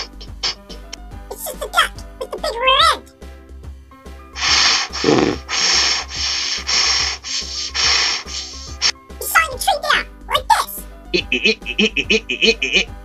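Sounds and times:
orchestral music: 0.0s - 13.0s
saw rasping through wood: 4.4s - 8.9s.

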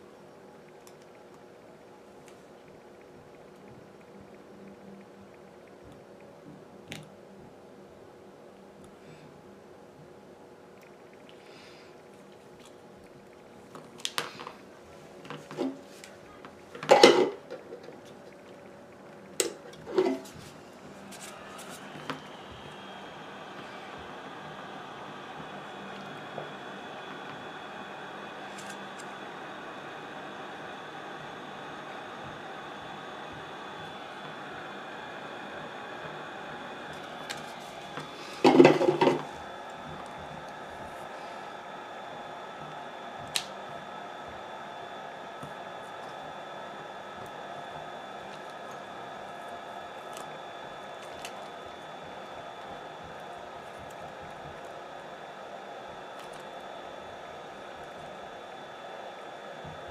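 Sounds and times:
heat gun fan hum: 0.0s - 59.9s.

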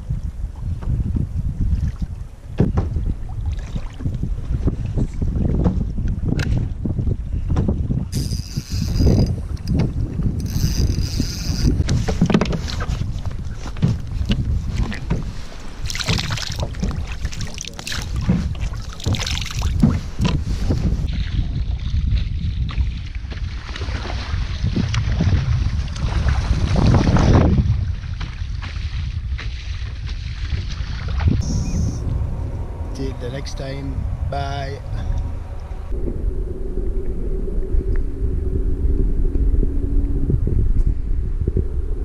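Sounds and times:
wind buffeting microphone: 0.0s - 42.0s
water slapping against hull: 0.6s - 31.4s
fishing tackle knocks and clicks: 8.2s - 12.9s.

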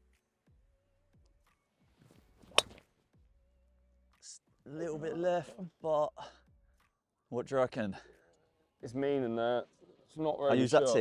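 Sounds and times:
golf club swish: 2.0s - 2.9s
golf club striking ball: 2.4s - 2.8s.

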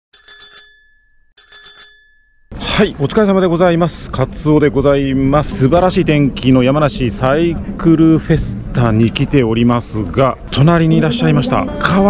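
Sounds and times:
bicycle bell ringing: 0.1s - 2.6s.

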